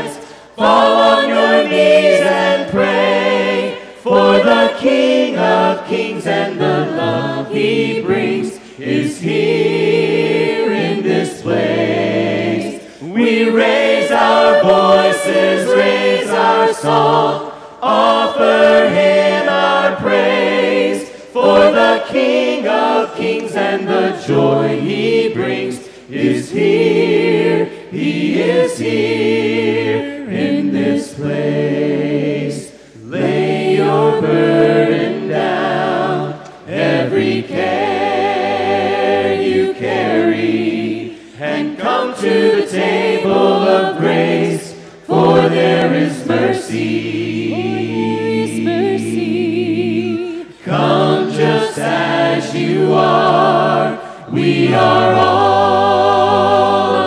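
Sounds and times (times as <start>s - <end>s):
congregation singing a cappella: 0.0s - 57.0s.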